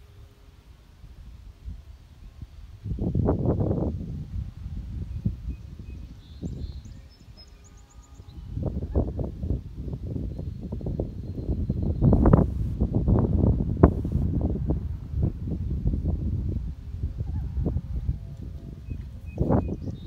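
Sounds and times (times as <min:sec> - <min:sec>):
wind buffeting microphone: 0:01.0 - 0:20.0.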